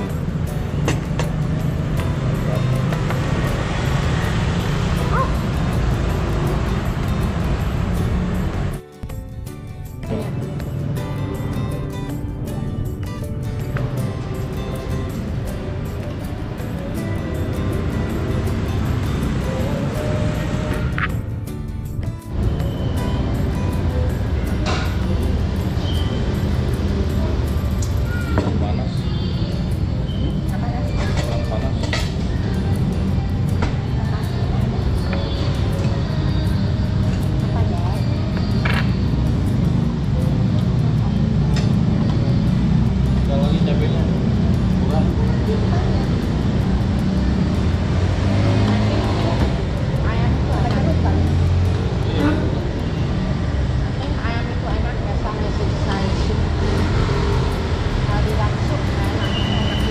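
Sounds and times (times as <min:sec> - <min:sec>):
faint music: 0:00.0 - 0:59.9
road traffic rumble: 0:00.0 - 0:59.9.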